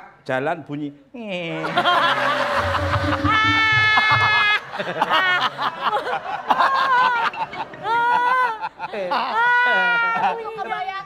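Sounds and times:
audience laughing: 0:01.6 - 0:09.5
held musical tone: 0:02.2 - 0:04.6.

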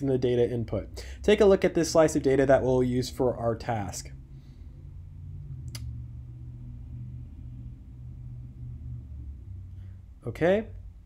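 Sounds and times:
room hum and rumble: 0:00.0 - 0:11.0.

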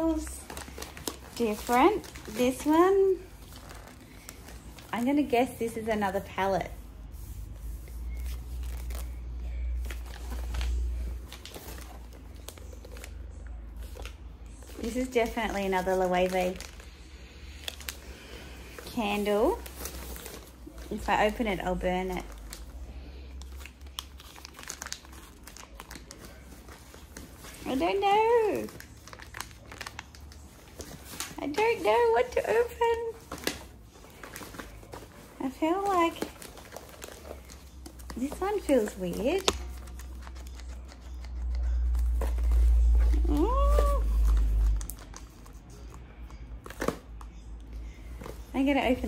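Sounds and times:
wrapping paper crinkling: 0:00.0 - 0:49.0.

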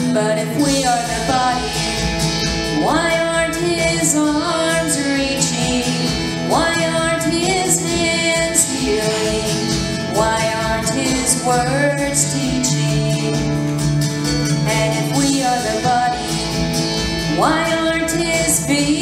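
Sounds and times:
woman singing into microphone: 0:00.0 - 0:02.0, 0:02.6 - 0:13.8, 0:14.5 - 0:16.6, 0:17.2 - 0:19.0
instrumental accompaniment: 0:00.0 - 0:19.0.

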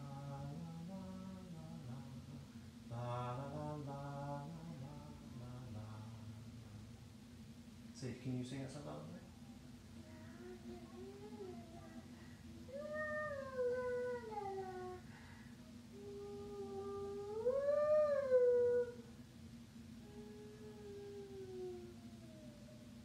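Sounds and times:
person singing a lullaby: 0:00.0 - 0:06.3, 0:10.0 - 0:15.2, 0:15.9 - 0:19.1, 0:20.0 - 0:23.0
steady low hum: 0:00.0 - 0:23.0.

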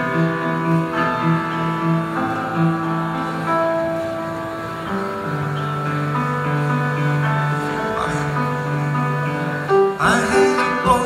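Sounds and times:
band playing slow sustained chords: 0:00.0 - 0:11.0.

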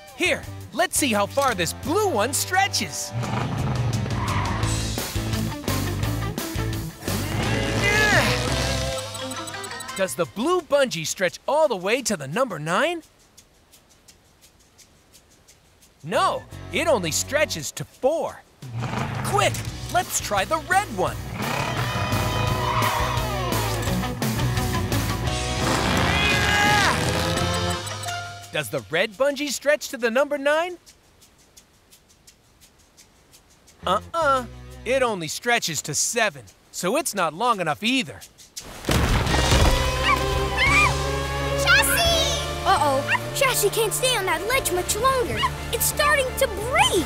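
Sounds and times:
background music: 0:00.0 - 0:11.0, 0:16.1 - 0:17.7, 0:18.6 - 0:29.3, 0:33.8 - 0:35.2, 0:39.2 - 0:47.0
truck engine revving: 0:07.0 - 0:09.0, 0:25.3 - 0:28.0.

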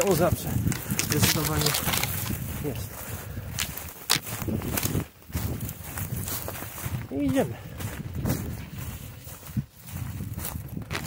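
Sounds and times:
footsteps in dry leaves: 0:00.0 - 0:11.0.

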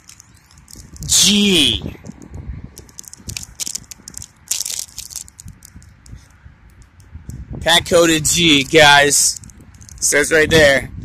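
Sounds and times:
plastic packet crinkling: 0:00.0 - 0:01.1, 0:02.8 - 0:05.9.

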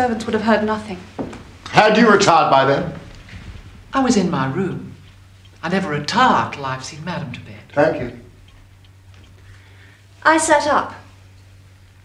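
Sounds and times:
woman speaking: 0:00.0 - 0:01.1, 0:10.2 - 0:11.1
low steady hum: 0:00.0 - 0:12.0
clock ticking: 0:01.7 - 0:11.0.

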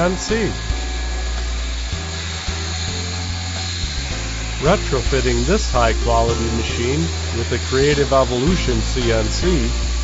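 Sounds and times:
background music with bass line: 0:00.0 - 0:10.0
milling machine cutting steel: 0:00.0 - 0:10.0.

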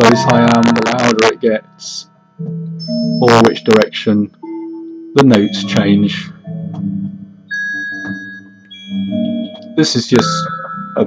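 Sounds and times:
synthesized notes: 0:00.0 - 0:11.0.

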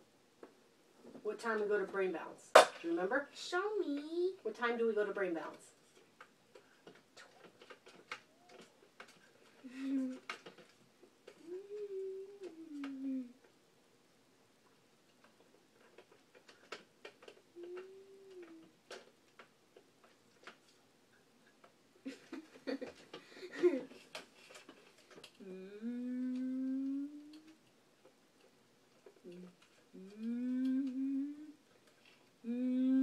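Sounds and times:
faint clicks: 0:05.9 - 0:13.6, 0:14.6 - 0:32.6
person humming: 0:09.6 - 0:10.3, 0:11.3 - 0:13.5, 0:17.5 - 0:18.8, 0:25.4 - 0:27.6, 0:29.2 - 0:31.6, 0:32.4 - 0:33.0.

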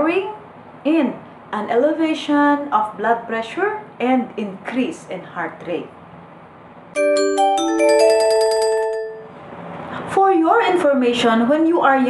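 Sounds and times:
chime-like mallet jingle: 0:07.0 - 0:09.4.

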